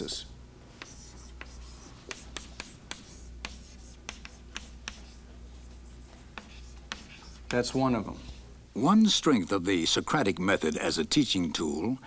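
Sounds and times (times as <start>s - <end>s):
chalk tapping and scratching: 0.8s - 8.4s.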